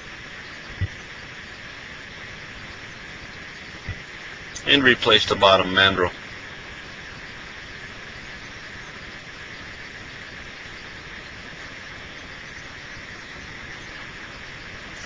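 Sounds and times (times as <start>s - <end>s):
steady background hiss: 0.0s - 15.0s.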